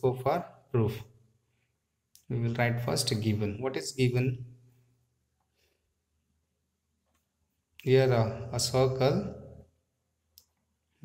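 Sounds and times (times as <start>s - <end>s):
man speaking: 0.0s - 1.1s, 2.2s - 4.6s, 7.8s - 9.6s.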